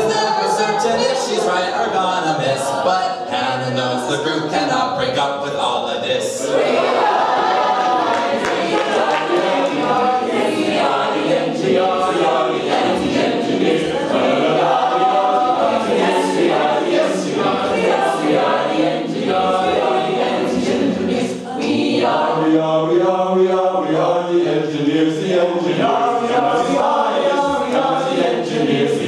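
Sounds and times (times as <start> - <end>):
a cappella group singing: 0.0 - 4.7, 6.3 - 29.0.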